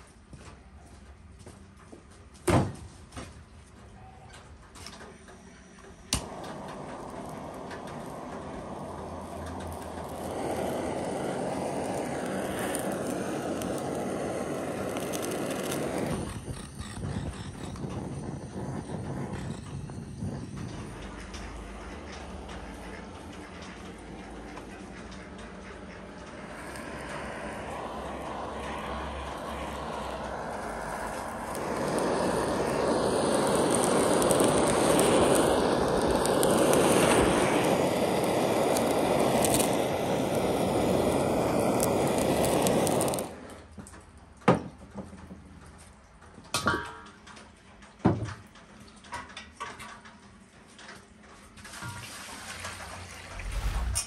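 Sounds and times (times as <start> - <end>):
gas blowtorch hissing: 6.0 - 24.6, 26.1 - 43.7.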